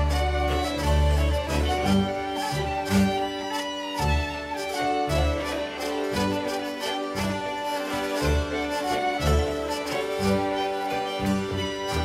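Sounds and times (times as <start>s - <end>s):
double bass notes: 0.0s - 12.0s
fiddles playing melody: 0.0s - 12.0s
hammered dulcimer: 0.0s - 12.0s.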